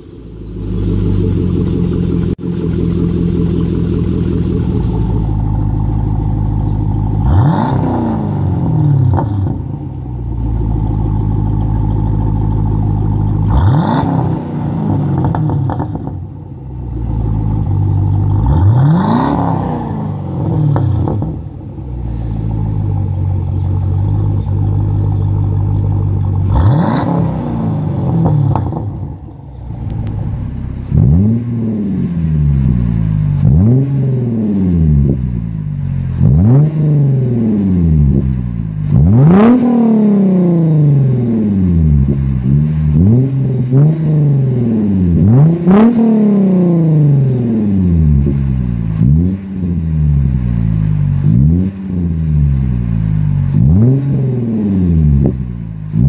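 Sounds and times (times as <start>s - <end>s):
car engine idling and revving: 0.0s - 56.0s.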